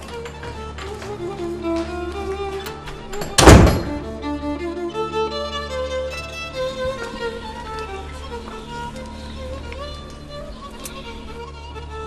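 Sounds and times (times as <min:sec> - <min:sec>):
wooden door shutting: 0:00.0 - 0:04.2
violin and cello drama score: 0:00.0 - 0:12.0.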